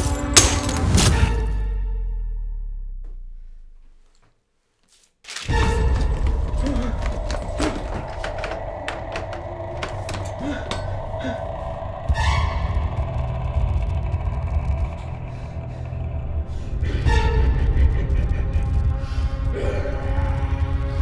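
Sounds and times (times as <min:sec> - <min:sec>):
knocks and clatters: 0:05.3 - 0:11.2
eerie held music tones: 0:05.7 - 0:21.0
low rumbling drone: 0:05.7 - 0:21.0.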